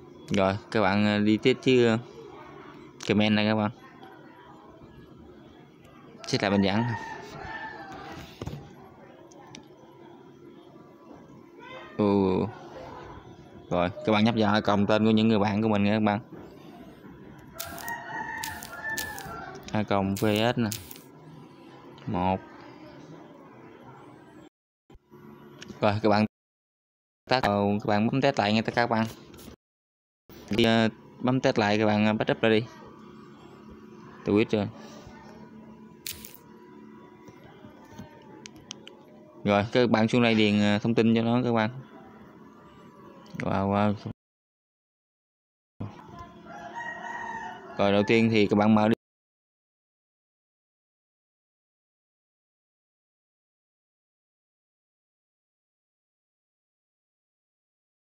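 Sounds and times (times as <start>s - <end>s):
rooster crowing: 6.2s - 8.4s, 17.5s - 21.0s, 46.4s - 48.3s.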